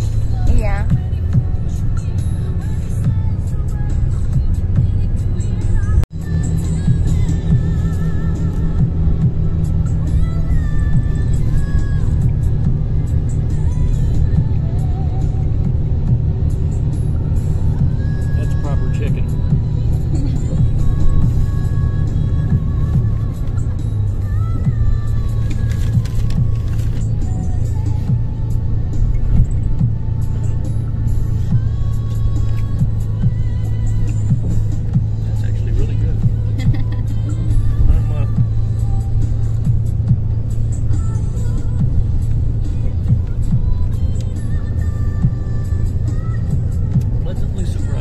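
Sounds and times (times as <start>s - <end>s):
bus engine drone: 0.0s - 48.0s
music playing: 0.0s - 48.0s.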